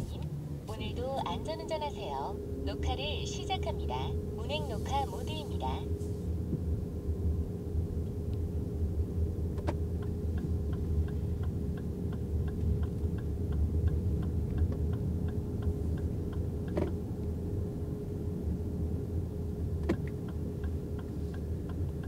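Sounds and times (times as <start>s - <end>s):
car cabin road rumble: 0.0s - 22.0s
turn signal ticking: 8.0s - 22.0s.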